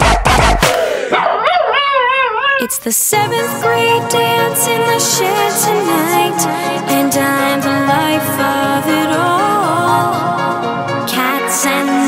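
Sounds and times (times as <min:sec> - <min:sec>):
dog howling: 0:01.1 - 0:02.7
person singing: 0:02.6 - 0:12.0.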